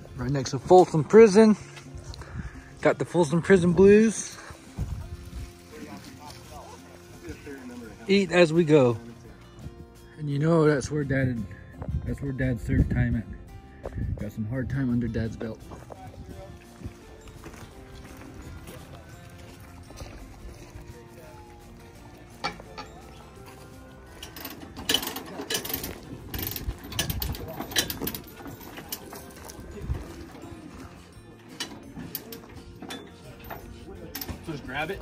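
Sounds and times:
sharp metal clicks and clanks: 24.2 - 29.4.

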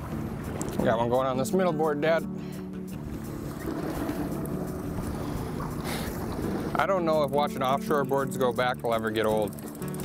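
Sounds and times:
boat engine droning: 0.0 - 10.0
water noise: 0.0 - 10.0
wind: 0.0 - 10.0.

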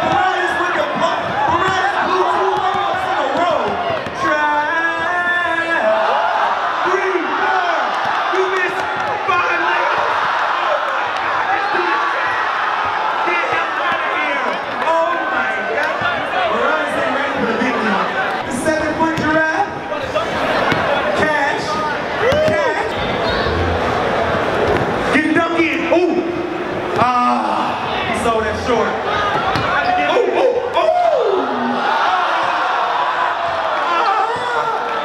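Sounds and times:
crowd voices talking and calling: 0.0 - 35.0.

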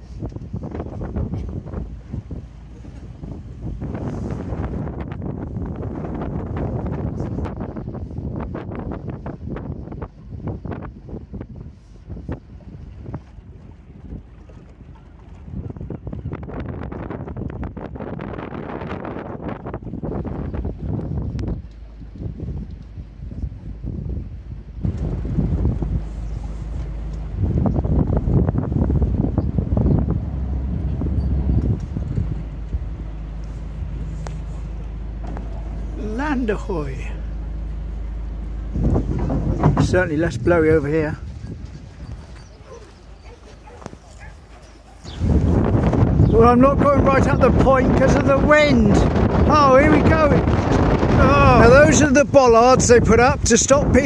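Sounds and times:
ferry engine humming: 0.0 - 8.3, 8.9 - 54.0
wind buffeting microphone: 0.0 - 54.0.

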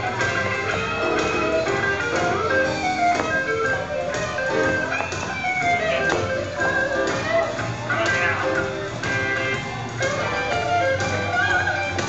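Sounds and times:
music of held notes: 0.0 - 12.0.

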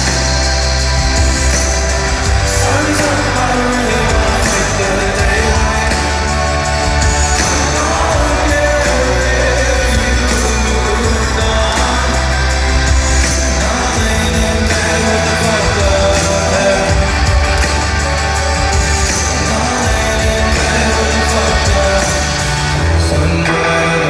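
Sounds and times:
bass-driven backing track: 0.0 - 24.0
male singer vocals: 0.0 - 24.0.

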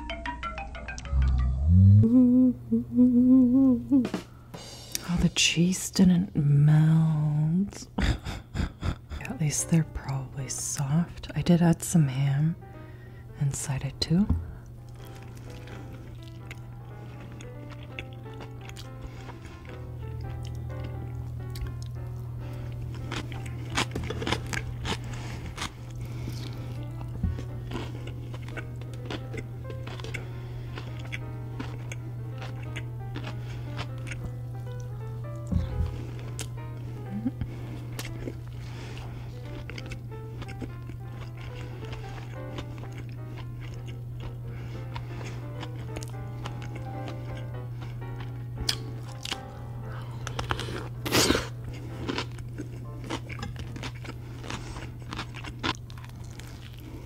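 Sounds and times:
background music with drone: 14.2 - 56.8
chewing fried food: 14.5 - 57.0.

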